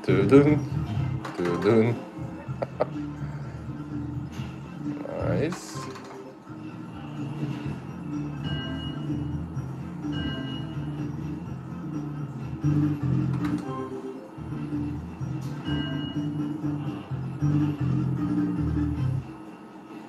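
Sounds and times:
slot machine electronic melody: 2.6 - 19.3
chiming notes: 7.8 - 11.3, 15.5 - 16.8.

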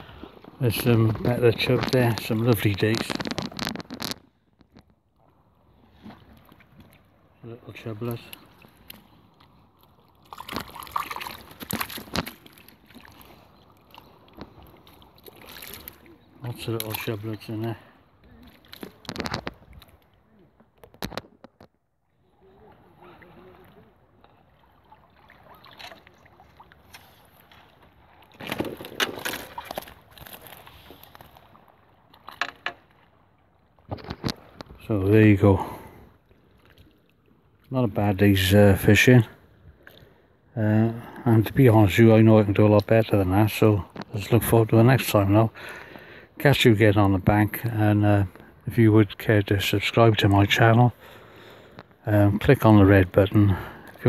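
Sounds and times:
water splashing: 0.0 - 20.3, 22.3 - 37.7
faint water noise: 0.0 - 54.0
wet mesh rustling: 1.6 - 4.7
fish flapping in net: 3.0 - 4.2.

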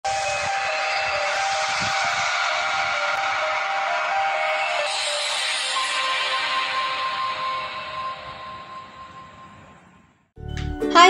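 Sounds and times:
rushing hiss with sustained tones: 0.1 - 9.9
music: 0.1 - 11.0.

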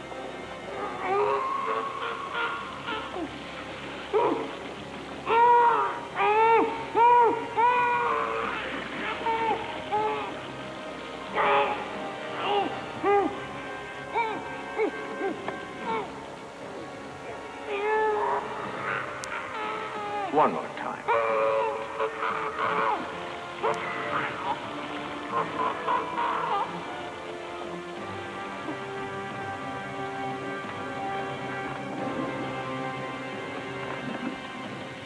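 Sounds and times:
film music: 0.0 - 35.0.

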